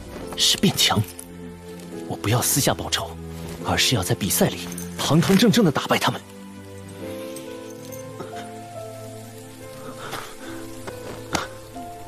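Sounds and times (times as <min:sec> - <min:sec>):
faint hiss: 0:00.0 - 0:12.0
soft sustained background score: 0:00.0 - 0:12.0.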